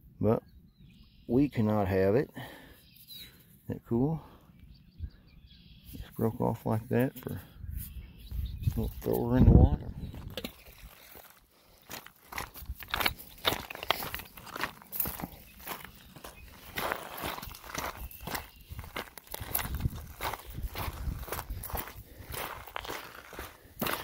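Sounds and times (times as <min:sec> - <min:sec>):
footsteps crunching on gravel: 0:10.2 - 0:24.0
stones clattering underfoot: 0:10.2 - 0:24.0.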